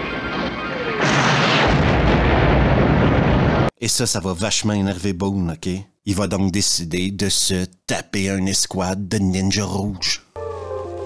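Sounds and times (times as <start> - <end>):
large explosion: 0.0 - 3.7
rocket launcher firing: 0.0 - 3.7.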